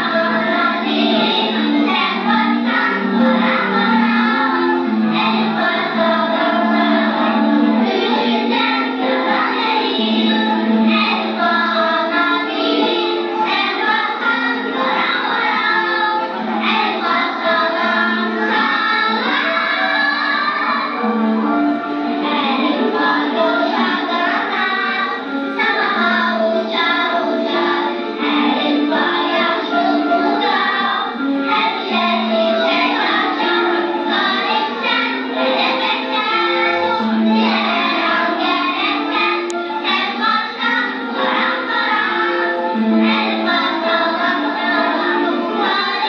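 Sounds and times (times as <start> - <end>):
children singing: 0.0 - 46.0
instrumental accompaniment: 0.0 - 46.0.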